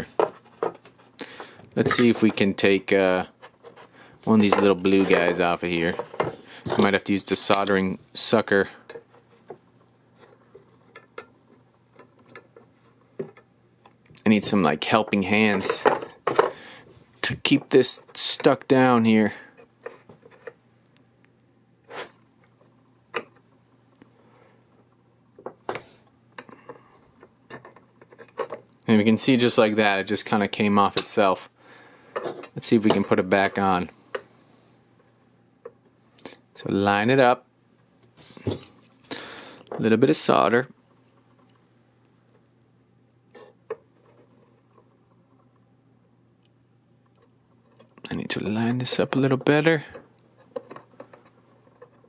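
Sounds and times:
faint steady hum: 0:00.0 - 0:52.0.

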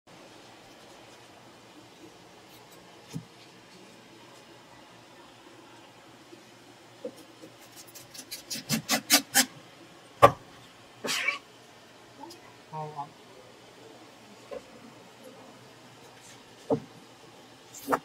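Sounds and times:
knife scraping rasp: 0:07.4 - 0:09.5.

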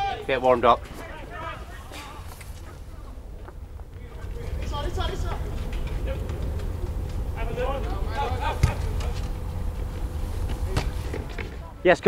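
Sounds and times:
faint distant voices calling: 0:00.0 - 0:12.0
steady low rumble: 0:00.0 - 0:12.0.

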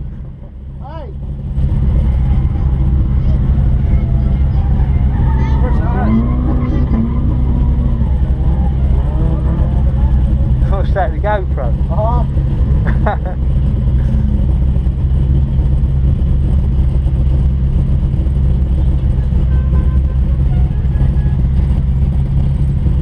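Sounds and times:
car engine idling: 0:00.0 - 0:23.0.

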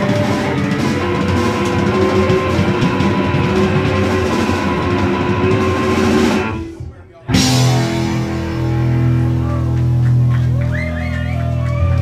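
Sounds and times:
electric guitar sustained notes: 0:00.0 - 0:06.6, 0:07.3 - 0:12.0
bass guitar: 0:00.0 - 0:12.0
drum kit: 0:00.0 - 0:12.0.

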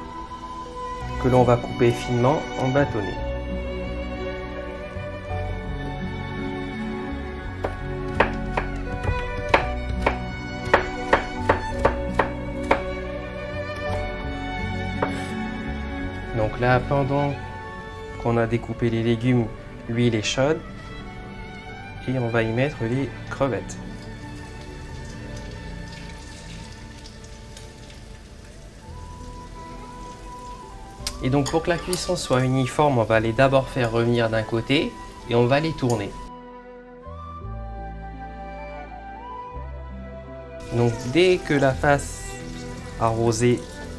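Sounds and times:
background music with violin: 0:00.0 - 0:43.9
knife chopping on cutting board: 0:07.6 - 0:12.9, 0:15.0 - 0:15.4
shrimp sizzling in oil: 0:24.0 - 0:32.4, 0:40.6 - 0:43.9.

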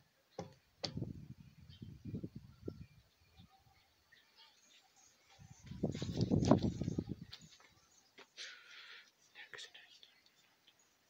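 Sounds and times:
person whispering: 0:09.3 - 0:10.6.

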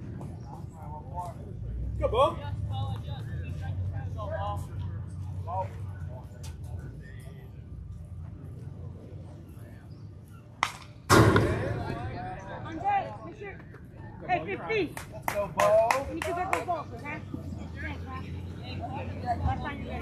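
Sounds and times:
sharp claps: 0:10.6 - 0:11.5, 0:14.9 - 0:16.8
baseball bat crack: 0:10.6 - 0:12.0.

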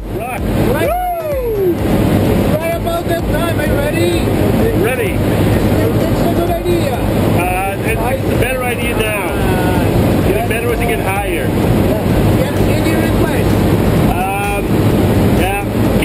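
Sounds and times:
plane engine and propeller droning: 0:00.0 - 0:16.0
voices talking: 0:00.0 - 0:16.0.

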